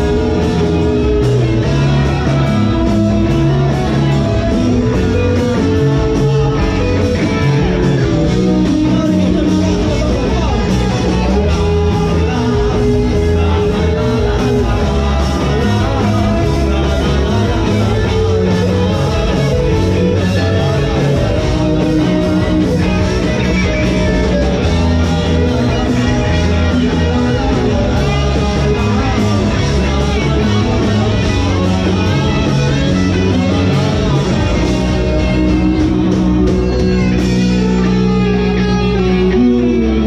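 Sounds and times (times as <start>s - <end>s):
bass guitar: 0.0s - 40.0s
drums: 0.0s - 40.0s
electric guitars: 0.0s - 40.0s.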